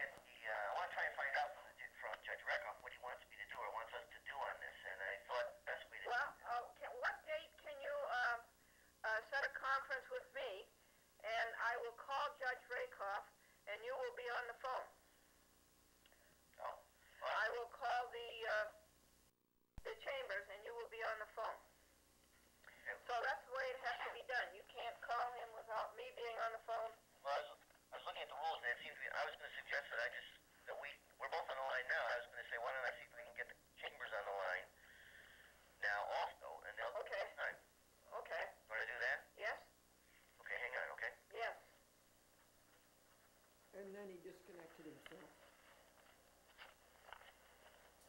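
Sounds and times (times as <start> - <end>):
voices over a phone line: 0.0 - 15.0, 16.6 - 18.8, 19.9 - 21.7, 22.7 - 34.9, 40.4 - 41.7.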